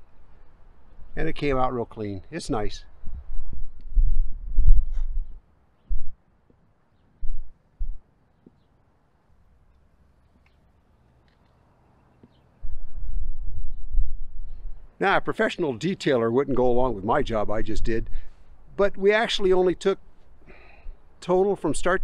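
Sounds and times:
muffled rumbling on microphone: 0:02.5 - 0:06.2, 0:07.2 - 0:08.0, 0:12.6 - 0:14.9.

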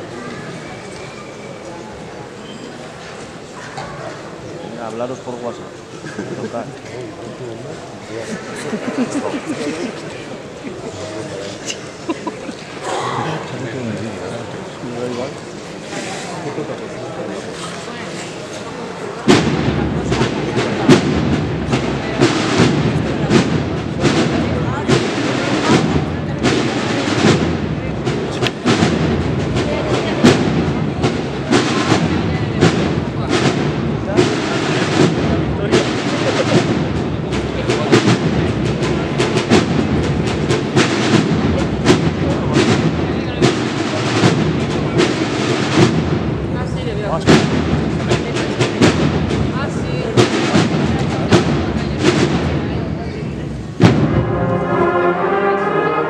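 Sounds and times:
audience murmur: 0:00.0 - 0:56.0
background noise and voices: 0:00.0 - 0:56.0
cornet and drum band playing: 0:08.3 - 0:10.6, 0:19.3 - 0:56.0
heavy drum strokes: 0:19.2 - 0:56.0.

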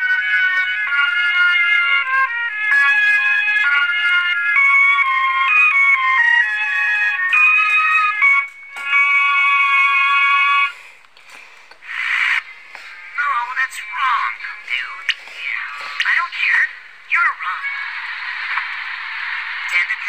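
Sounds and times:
high-pitched melody: 0:00.0 - 0:10.8.

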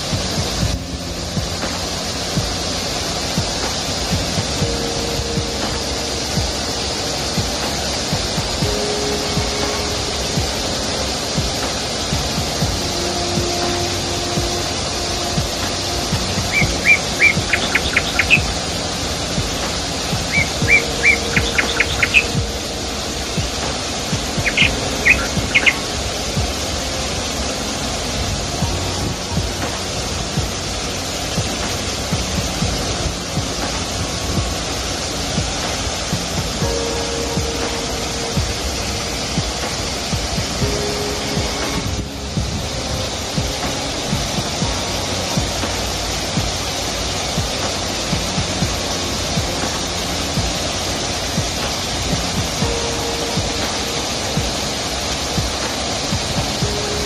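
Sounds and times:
birds chirping: 0:00.0 - 0:57.0
waterfall rushing into a pool: 0:00.0 - 0:57.0.

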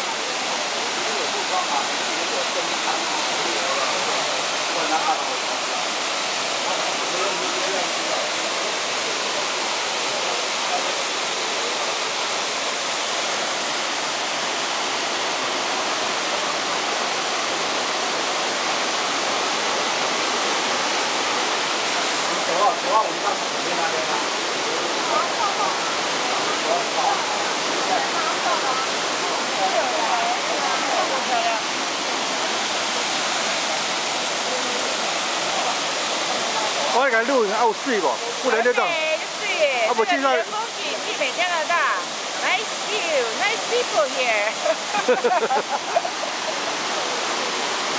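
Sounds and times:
waterfall rushing: 0:00.0 - 0:47.9.

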